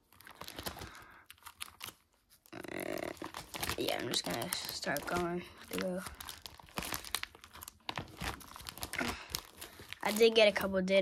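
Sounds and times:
plastic pages crinkling: 0:00.0 - 0:11.0.

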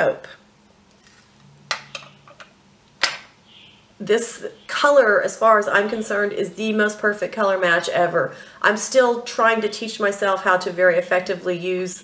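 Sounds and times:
eyeglasses set on glass: 0:01.0 - 0:03.3.

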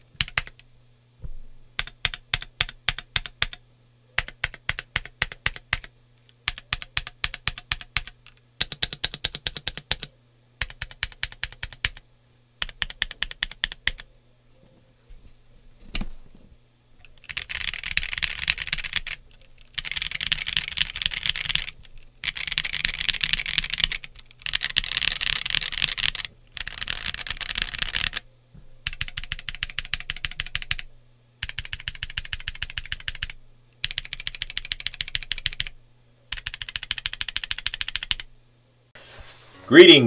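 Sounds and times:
mechanical keyboard typing: 0:00.2 - 0:00.6, 0:01.8 - 0:03.6, 0:04.2 - 0:12.0, 0:12.6 - 0:14.1, 0:17.2 - 0:28.2, 0:28.8 - 0:35.7, 0:36.3 - 0:38.3.

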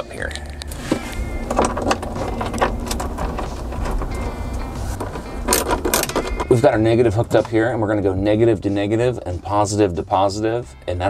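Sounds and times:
background music with low beat: 0:00.0 - 0:11.0.

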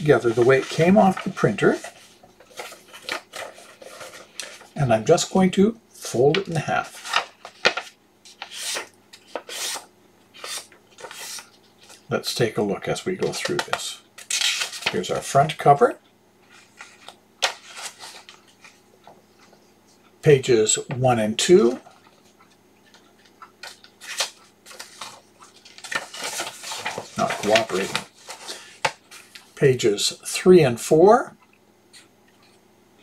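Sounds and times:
paper sheets rustling and sliding: 0:00.0 - 0:12.1, 0:13.2 - 0:15.2, 0:16.5 - 0:18.8, 0:21.5 - 0:29.6.

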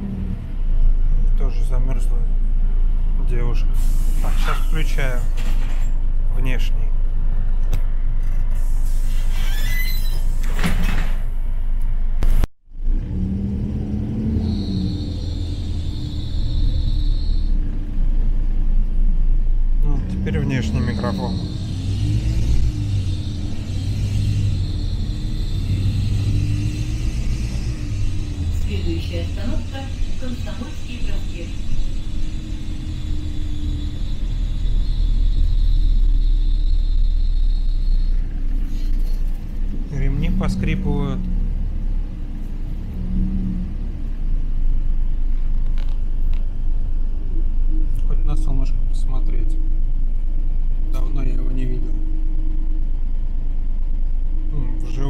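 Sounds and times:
bus engine rumble: 0:00.0 - 0:55.0
high steady whine: 0:19.8 - 0:42.6, 0:44.2 - 0:55.0.

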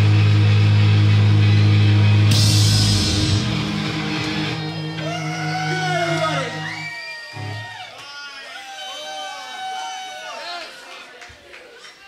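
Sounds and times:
amplified low note drone: 0:00.0 - 0:06.8.

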